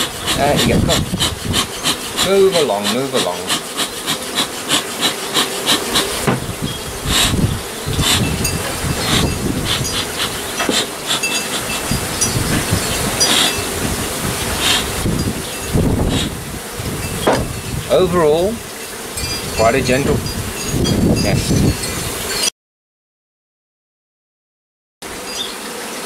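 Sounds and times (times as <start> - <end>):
bellows puffing short knocks: 0.0 - 7.4, 8.0 - 14.0, 17.1 - 17.6
bees buzzing: 0.0 - 22.5, 25.0 - 26.0.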